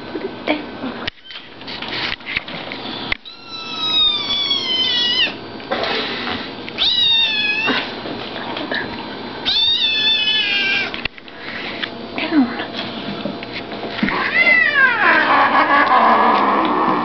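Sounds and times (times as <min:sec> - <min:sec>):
kitten meowing: 0:03.2 - 0:05.4, 0:06.8 - 0:07.8, 0:09.5 - 0:11.0.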